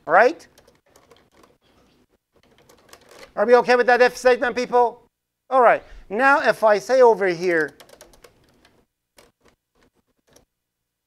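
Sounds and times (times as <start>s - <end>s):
keyboard keys clicking: 0.5s - 1.6s, 2.4s - 3.3s, 7.4s - 10.5s.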